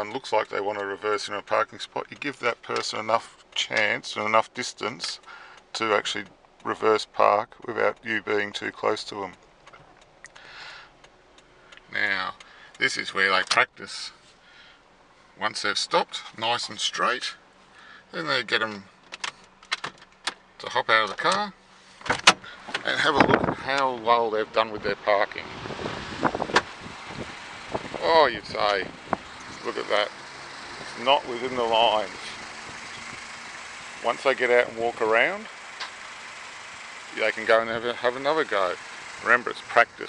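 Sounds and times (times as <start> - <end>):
turn signal ticking: 0.0 - 15.2, 25.5 - 40.0
wind on microphone: 25.5 - 28.0.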